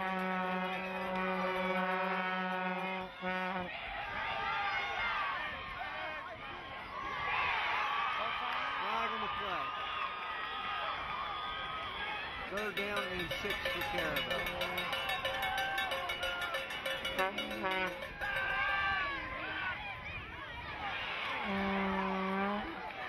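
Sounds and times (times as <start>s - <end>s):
long horn note: 0.0s - 3.7s, 17.2s - 18.1s, 21.4s - 22.8s
spectators shouting and cheering: 0.0s - 23.0s.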